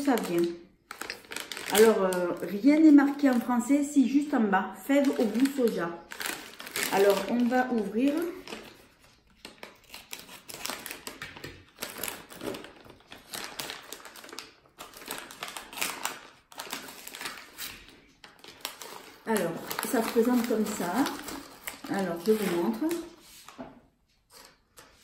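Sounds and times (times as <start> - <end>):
plastic pouch crinkling: 0.0 - 3.6, 4.7 - 23.6.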